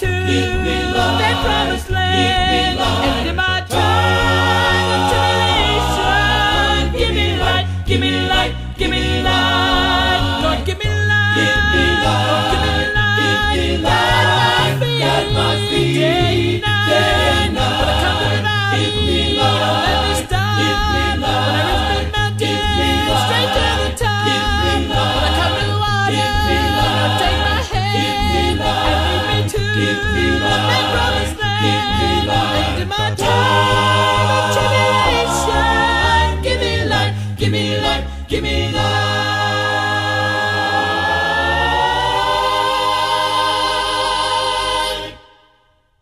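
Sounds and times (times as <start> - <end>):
male vocal group singing harmony: 0.0 - 45.4.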